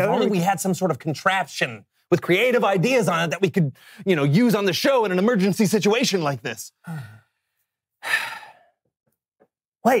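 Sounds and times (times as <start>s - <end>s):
man sighing: 6.8s - 7.4s.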